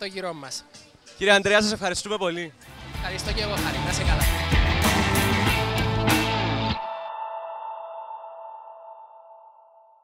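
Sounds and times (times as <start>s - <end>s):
ringing tone: 6.8s - 10.0s.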